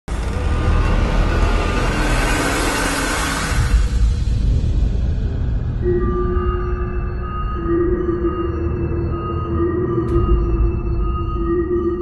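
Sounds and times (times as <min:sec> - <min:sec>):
low rumbling drone: 0:00.1 - 0:12.0.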